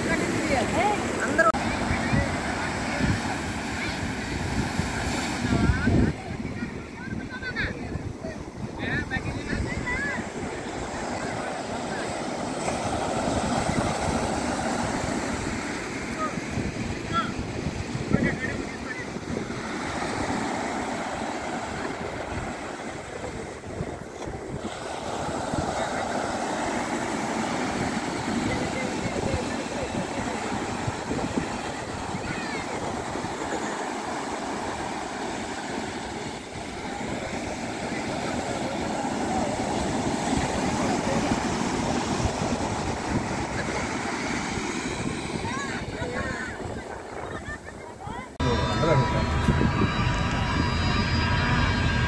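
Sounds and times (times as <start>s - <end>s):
faint voices of people: 0.0s - 52.0s
surf breaking on a sandy beach: 0.0s - 52.0s.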